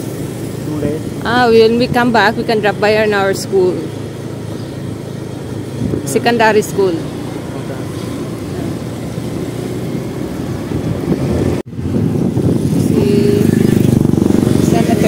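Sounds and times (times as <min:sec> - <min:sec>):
motorbike engine running: 0:00.0 - 0:15.0
wind rushing over microphone: 0:04.4 - 0:15.0.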